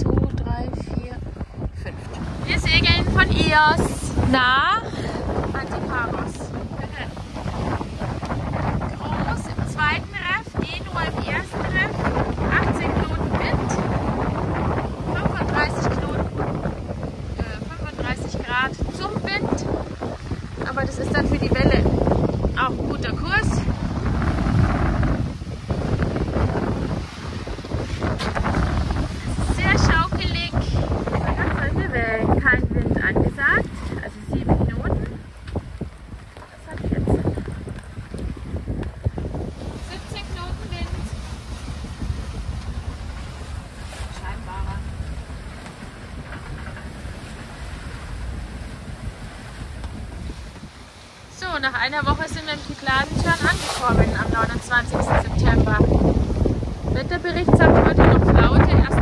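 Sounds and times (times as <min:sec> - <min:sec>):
rushing sea: 0:00.0 - 0:59.0
wind buffeting microphone: 0:00.0 - 0:59.0.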